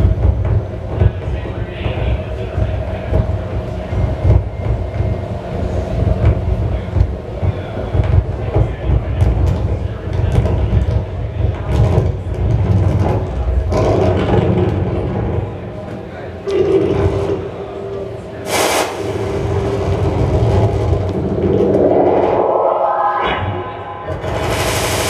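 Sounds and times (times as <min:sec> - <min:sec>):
pulsing low rumble: 0:19.1 - 0:25.0.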